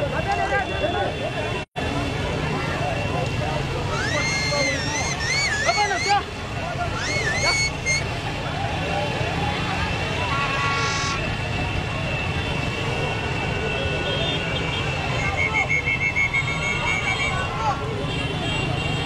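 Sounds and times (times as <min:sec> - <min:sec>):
crowd voices: 0:00.0 - 0:19.0
motorcycles running: 0:00.0 - 0:19.0
high wavering whistle-like tones: 0:03.9 - 0:06.2.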